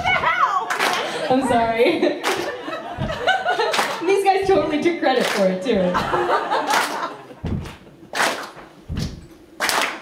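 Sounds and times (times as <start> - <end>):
hands clapping in unison: 0.7 - 1.2, 2.2 - 2.6, 3.6 - 4.1, 5.2 - 5.5, 6.6 - 10.0
feet stomping on floor: 1.3 - 5.0, 7.4 - 10.0.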